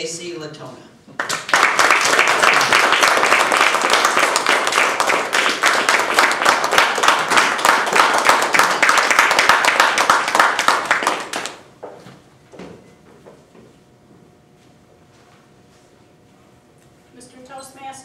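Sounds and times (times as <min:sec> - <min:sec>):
audience applauding: 0:01.2 - 0:11.7.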